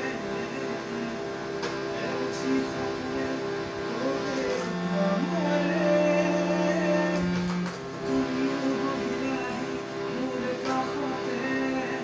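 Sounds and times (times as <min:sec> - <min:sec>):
harmonium playing reed chords: 0:00.0 - 0:12.0
man singing slow melody: 0:02.0 - 0:12.0.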